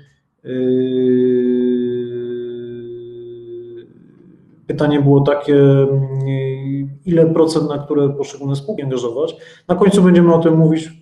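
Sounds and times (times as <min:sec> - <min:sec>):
man humming low: 0:00.5 - 0:04.5.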